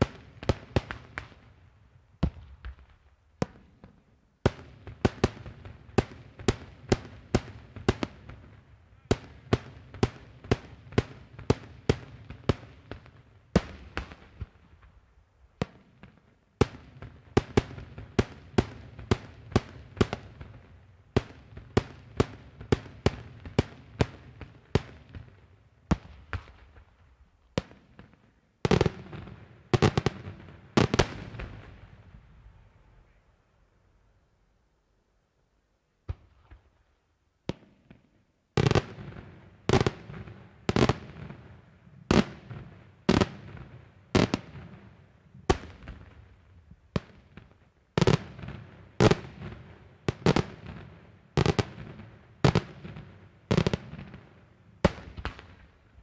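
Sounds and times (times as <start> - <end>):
fireworks bursting with sharp bangs: 0.0 - 32.6, 36.0 - 56.0.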